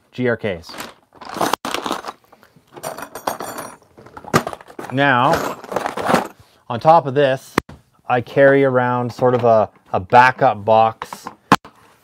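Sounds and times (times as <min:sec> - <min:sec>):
paper bag crinkling: 0:01.2 - 0:02.4
screws clinking: 0:02.7 - 0:06.3.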